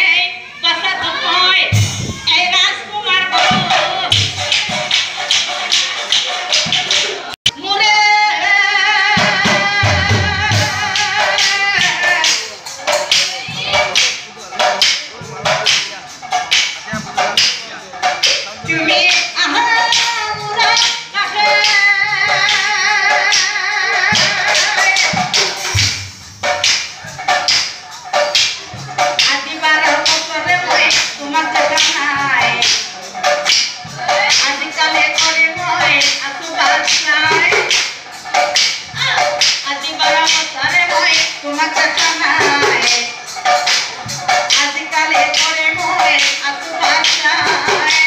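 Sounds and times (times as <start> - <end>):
woman singing: 0.0 - 4.8, 7.5 - 14.0, 18.6 - 25.6, 29.1 - 37.9, 38.6 - 43.3, 44.4 - 48.0
drum beats: 0.4 - 48.0.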